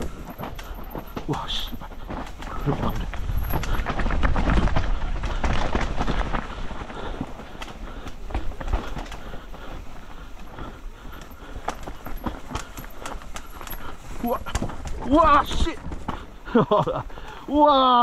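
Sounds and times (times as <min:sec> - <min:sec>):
wind rumbling on microphone: 0:00.0 - 0:16.5
tyres rolling over roots and stones: 0:00.0 - 0:18.0
bike knocking over bumps: 0:10.4 - 0:17.3.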